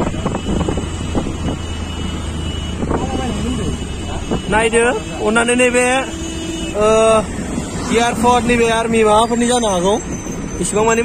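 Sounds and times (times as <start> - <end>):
vehicle road noise rumble: 0.0 - 11.0.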